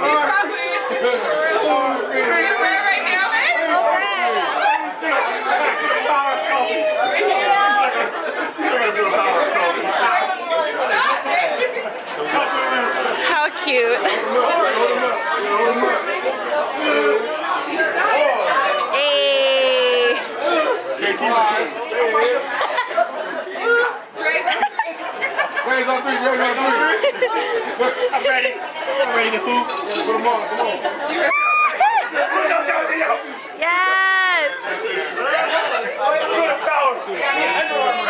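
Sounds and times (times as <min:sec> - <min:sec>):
group chatter: 0:00.0 - 0:38.0.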